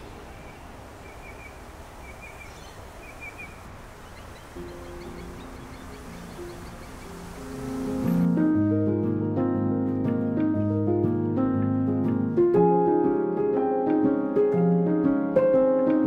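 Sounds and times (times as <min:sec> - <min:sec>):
bird chirps: 0:00.0 - 0:08.2
distant traffic rumble: 0:00.0 - 0:08.4
soft background music: 0:04.4 - 0:16.0.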